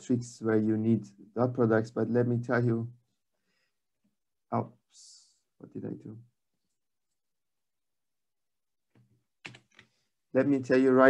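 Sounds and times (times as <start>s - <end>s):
computer keys clicking: 9.4s - 9.9s.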